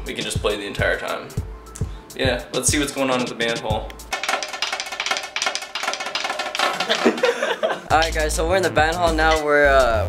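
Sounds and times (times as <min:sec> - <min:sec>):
snare drum on mesh head: 0:02.6 - 0:07.4.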